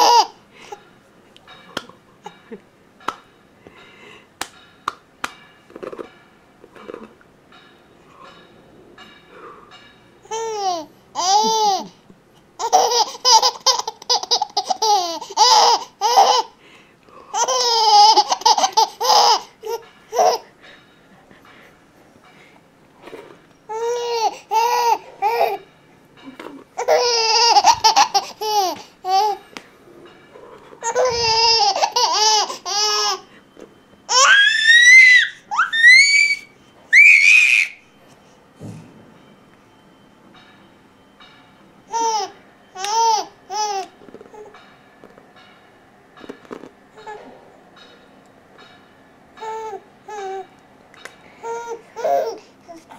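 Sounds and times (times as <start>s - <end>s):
baby laughing: 0.0s - 0.8s, 10.3s - 12.0s, 12.6s - 16.6s, 17.3s - 20.5s, 23.7s - 25.6s, 26.8s - 29.4s, 30.8s - 33.3s
baby squealing with laughter: 30.8s - 33.2s, 34.1s - 37.8s.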